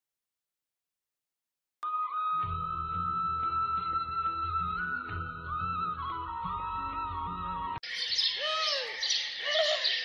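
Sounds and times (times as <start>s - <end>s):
birds chirping: 7.8s - 10.0s.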